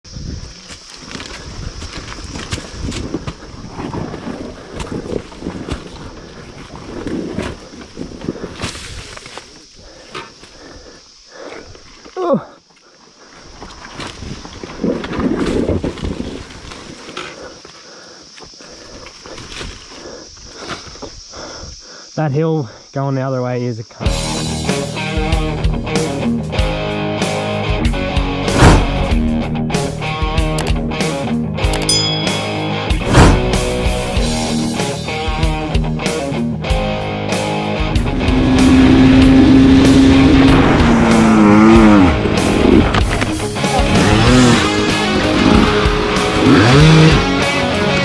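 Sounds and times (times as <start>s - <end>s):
dirt bike engine at low revs: 27.9s - 29.7s, 33.0s - 34.6s, 37.6s - 48.0s
falling whine: 37.6s - 48.0s.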